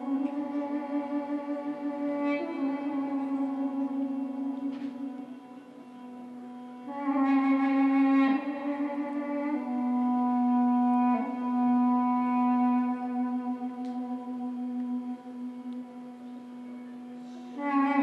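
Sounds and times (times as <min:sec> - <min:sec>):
duduk low drone: 0:00.0 - 0:18.0
duduk slow melody: 0:00.0 - 0:18.0.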